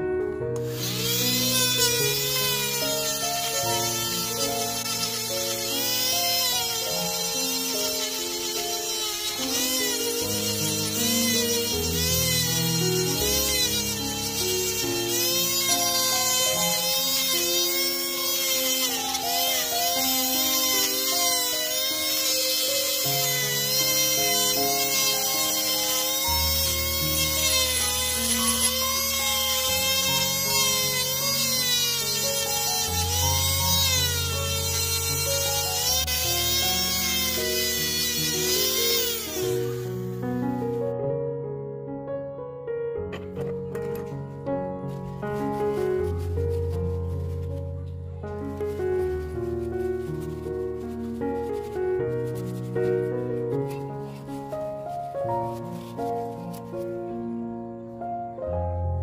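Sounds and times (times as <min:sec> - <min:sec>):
background music: 0:00.1 - 0:41.0
rotary tool whining: 0:00.6 - 0:40.2.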